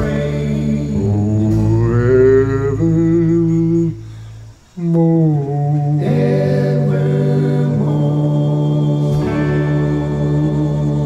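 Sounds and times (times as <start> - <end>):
man singing held notes: 0.0 - 4.1, 4.7 - 11.0.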